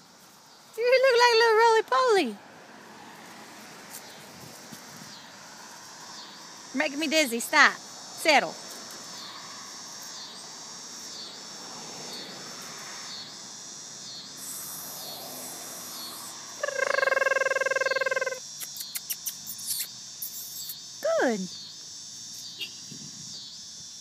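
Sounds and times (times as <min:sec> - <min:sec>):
insects chirping: 0:00.0 - 0:24.0
steady buzzing tone: 0:04.2 - 0:24.0.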